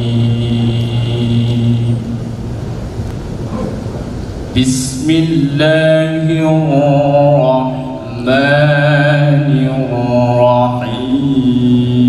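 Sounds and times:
steady noisy background: 0.0 - 12.0.

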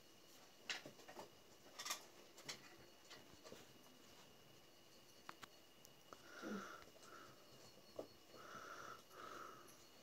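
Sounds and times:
faint breathy sounds: 6.1 - 10.0.

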